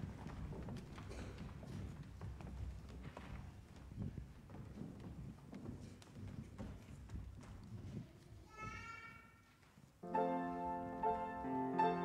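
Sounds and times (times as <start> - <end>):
footsteps on wooden stage: 0.0 - 11.5.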